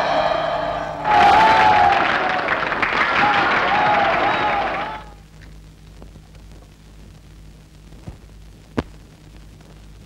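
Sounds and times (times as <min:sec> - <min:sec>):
film soundtrack hum: 0:00.0 - 0:10.0.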